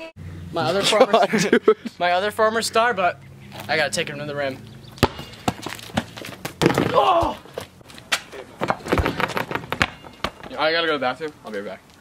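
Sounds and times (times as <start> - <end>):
scuffling feet: 4.5 - 12.0
rubber ball bouncing on asphalt: 4.8 - 10.8
person shouting: 6.9 - 7.4.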